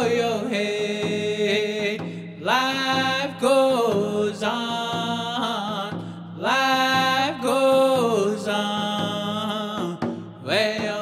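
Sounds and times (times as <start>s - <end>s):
steady drum beat: 0.0s - 11.0s.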